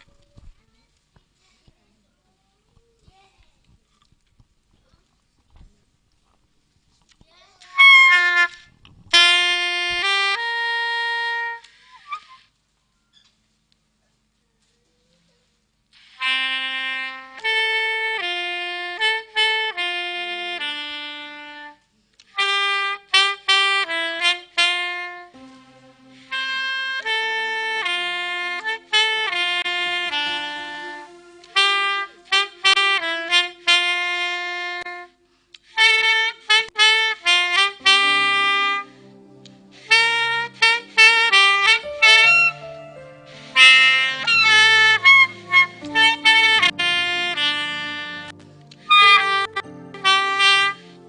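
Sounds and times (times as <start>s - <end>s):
saxophone solo melody: 7.8s - 12.3s, 16.0s - 21.8s, 22.4s - 51.0s
low held accompaniment notes: 25.2s - 35.3s, 37.8s - 51.0s.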